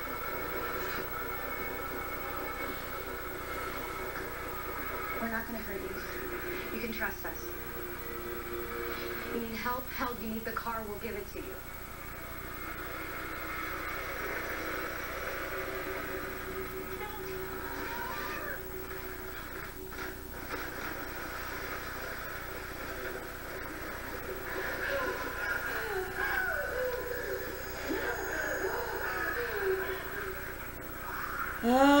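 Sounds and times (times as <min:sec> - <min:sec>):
muffled tv dialogue: 0:00.0 - 0:32.0.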